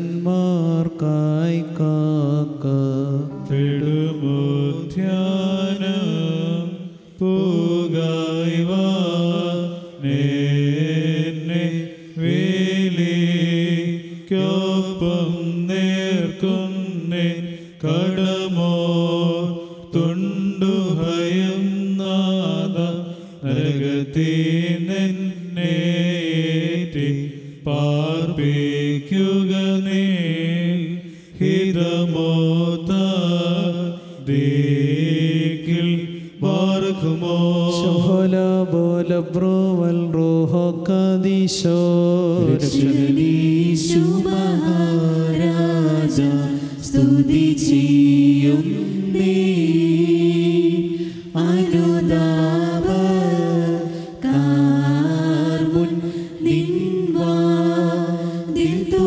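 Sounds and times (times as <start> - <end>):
men chanting: 0.0 - 59.0.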